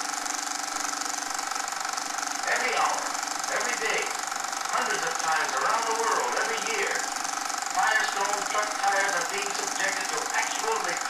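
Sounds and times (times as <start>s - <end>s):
film projector clattering: 0.0s - 11.0s.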